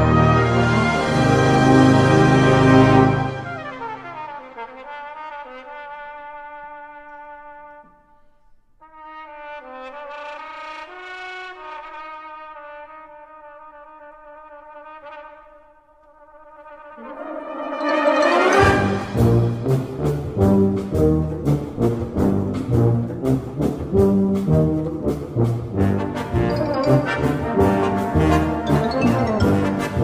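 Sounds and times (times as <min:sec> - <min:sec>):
brass band playing chords: 0:00.0 - 0:05.8, 0:17.0 - 0:30.0
percussion strikes: 0:17.0 - 0:30.0.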